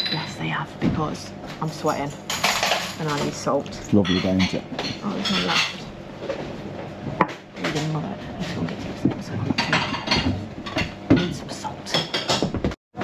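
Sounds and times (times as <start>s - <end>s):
crockery and cutlery clinking: 0.0s - 0.5s, 1.6s - 6.4s, 7.2s - 12.6s
indistinct voices: 0.0s - 2.2s, 3.0s - 5.9s, 7.6s - 10.2s.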